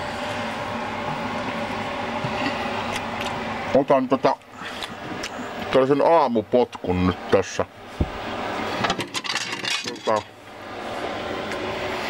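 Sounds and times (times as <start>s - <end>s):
glass bottles clinking: 9.0s - 10.2s.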